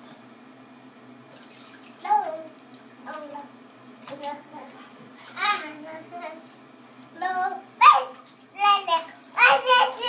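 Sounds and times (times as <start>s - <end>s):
bathwater sloshing: 1.3s - 5.9s, 7.8s - 10.0s
toddler high-pitched vocal sound: 7.5s - 10.0s.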